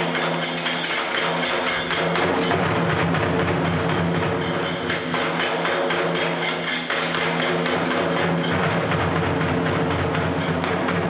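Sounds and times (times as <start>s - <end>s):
hand cymbals struck rhythmically: 0.0s - 11.0s.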